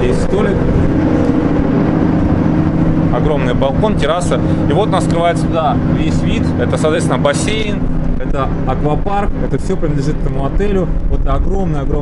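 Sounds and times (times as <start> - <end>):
mechanical hum with rumble: 0.0 - 12.0.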